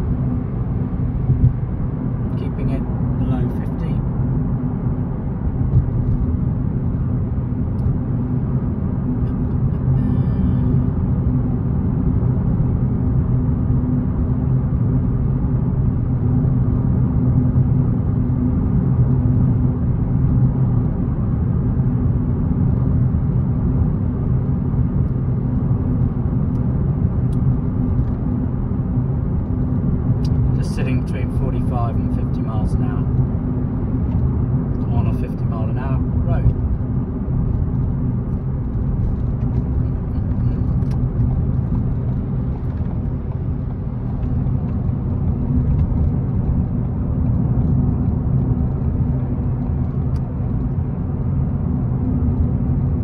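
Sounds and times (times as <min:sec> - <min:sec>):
car engine and road noise: 0:00.0 - 0:53.0.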